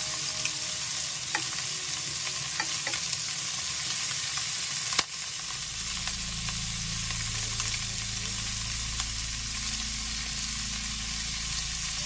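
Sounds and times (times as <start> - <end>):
chicken sizzling in oil: 0.0 - 12.0
low steady hum: 5.3 - 12.0.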